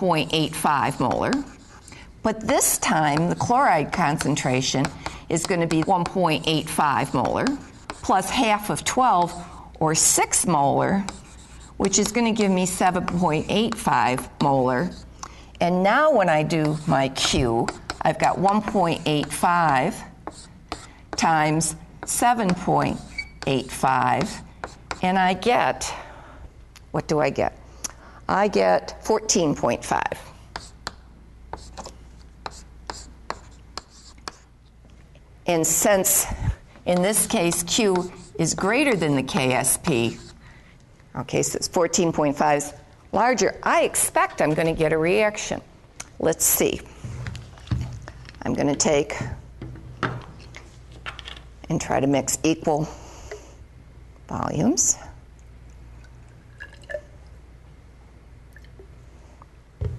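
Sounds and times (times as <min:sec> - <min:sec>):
chalk scratching strokes: 0:00.3 - 0:02.0, 0:02.9 - 0:09.6, 0:10.4 - 0:15.1, 0:16.3 - 0:20.9, 0:36.9 - 0:40.4
chalk tapping on chalkboard: 0:00.7 - 0:01.8, 0:03.0 - 0:08.3, 0:11.0 - 0:12.2, 0:16.4 - 0:21.3, 0:22.0 - 0:25.1, 0:30.5 - 0:34.4, 0:36.9 - 0:40.3
liquid trickling into test tube: 0:56.0 - 0:57.4, 0:58.5 - 0:59.0.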